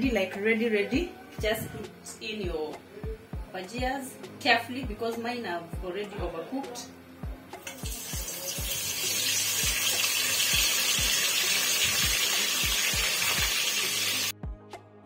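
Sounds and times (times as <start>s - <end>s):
background music with steady beat: 0.0s - 15.0s
potatoes sizzling in hot oil: 7.6s - 14.3s.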